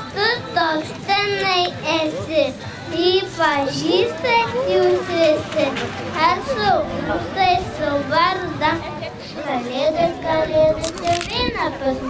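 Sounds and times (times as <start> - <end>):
boy speaking into a microphone: 0.0 - 12.0.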